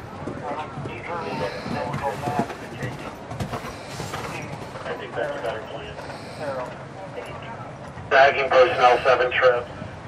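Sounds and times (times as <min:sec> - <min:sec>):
indistinct talking: 0:00.0 - 0:09.9
horse hoofbeats on sand: 0:00.2 - 0:05.7.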